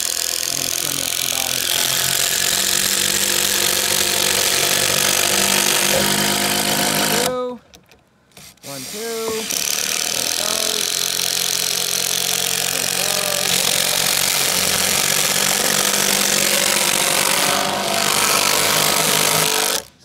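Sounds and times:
cordless drills driving screws: 0.0s - 7.4s, 8.3s - 19.9s.

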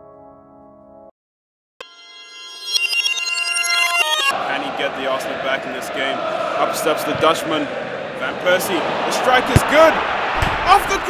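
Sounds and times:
stadium crowd roar: 4.3s - 11.0s
football commentator speaking: 4.4s - 10.0s, 10.6s - 11.0s.

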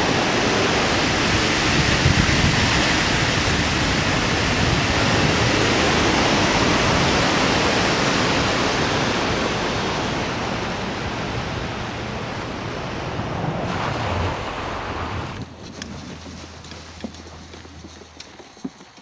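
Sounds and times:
wind buffeting microphone: 0.0s - 18.3s.

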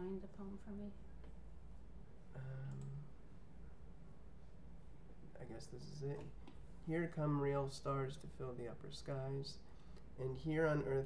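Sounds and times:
steady low hum: 0.0s - 11.0s
man saying um: 2.3s - 3.1s
computer mouse click: 2.7s - 3.0s.

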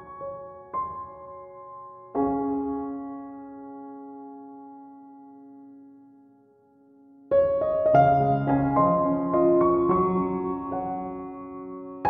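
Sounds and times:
piano chord: 0.0s - 12.0s.

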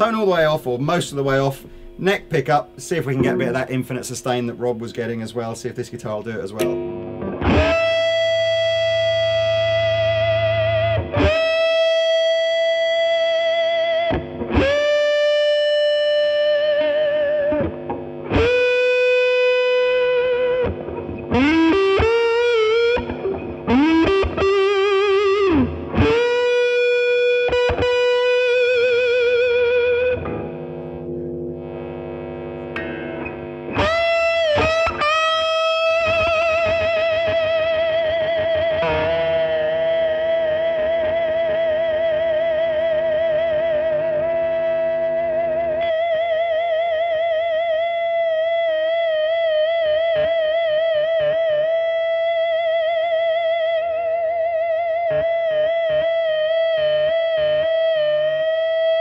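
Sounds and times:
overdriven electric guitar lead: 0.0s - 5.5s, 6.1s - 59.0s.

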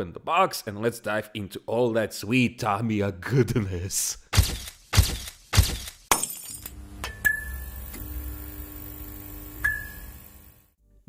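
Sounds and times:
cutter blade chopping: 4.4s - 6.2s.

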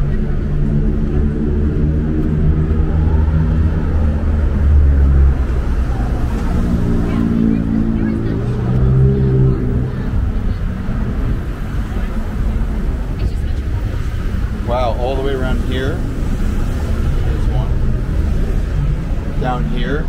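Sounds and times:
low rumble of road traffic: 0.0s - 20.0s
vehicle engine hum: 0.0s - 20.0s.

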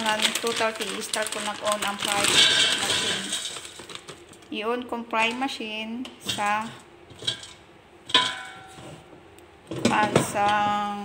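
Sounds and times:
metal basket knocking: 8.1s - 8.8s.

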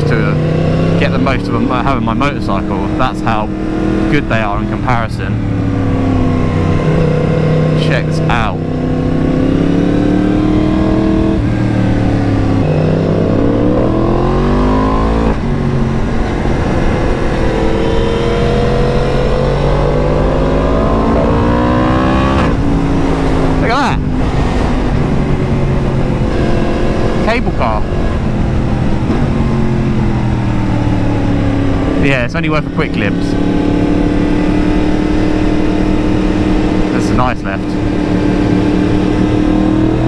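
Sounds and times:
motorcycle engine accelerating: 0.0s - 40.0s
wind rush: 22.5s - 30.6s.

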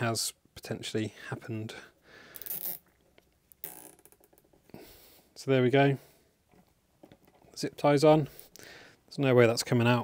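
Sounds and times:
zip tie rasping: 2.4s - 2.9s.

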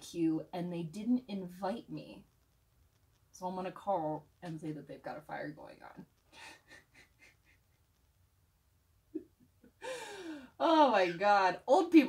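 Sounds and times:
woman chuckling breathily: 6.4s - 7.7s, 9.2s - 10.6s.

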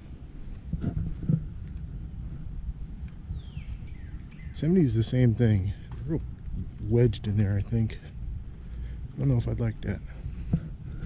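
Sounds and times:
vehicle rolling rumble: 0.0s - 11.0s.

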